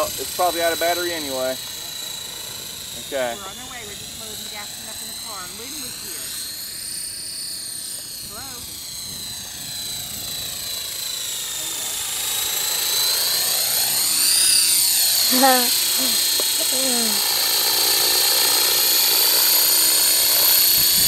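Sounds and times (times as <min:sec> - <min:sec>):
rc helicopter motor whine: 0:00.0 - 0:21.0.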